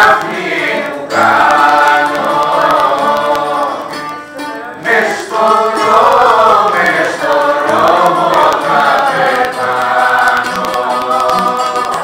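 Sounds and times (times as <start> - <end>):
bouzouki accompaniment: 0.0 - 12.0
people singing long wavering notes: 0.0 - 12.0.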